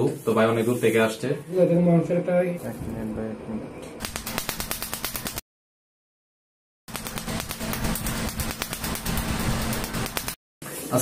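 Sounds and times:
laser snapping pulses: 6.9 - 10.4.

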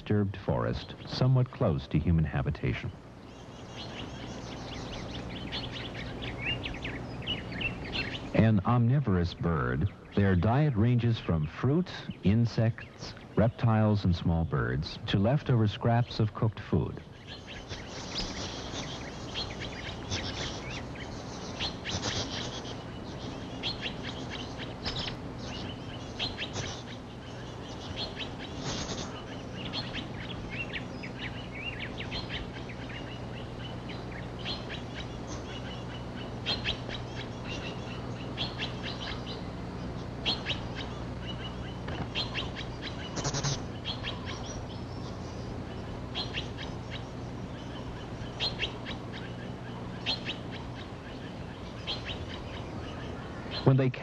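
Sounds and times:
birds giving sharp calls: 0.0 - 54.0
steady low hum: 0.0 - 54.0.

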